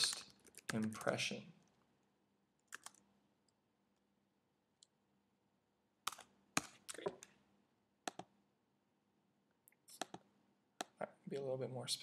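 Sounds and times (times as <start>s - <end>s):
computer key clicks: 2.7s - 3.0s.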